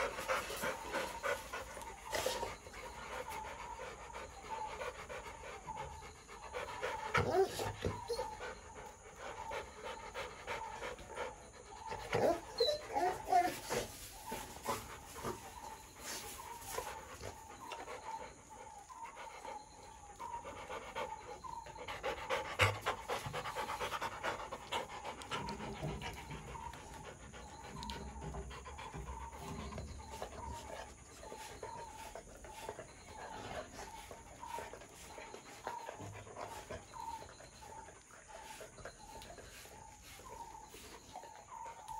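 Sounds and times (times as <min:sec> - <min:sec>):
dog panting: 0:00.0 - 0:41.9.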